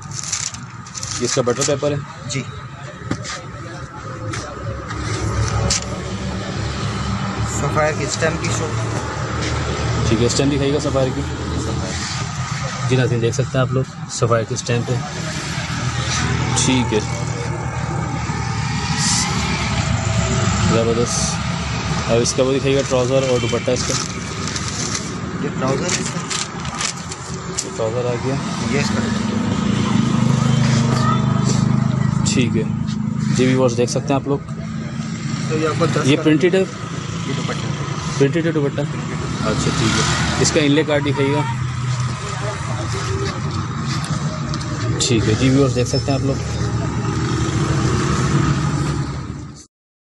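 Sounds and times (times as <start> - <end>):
low engine drone: 2.8 - 49.7
man speaking: 9.9 - 12.1, 12.7 - 15.3, 16.1 - 17.9, 20.6 - 24.1, 25.4 - 26.2, 27.7 - 29.3, 32.2 - 34.5, 35.4 - 41.7, 44.9 - 46.8.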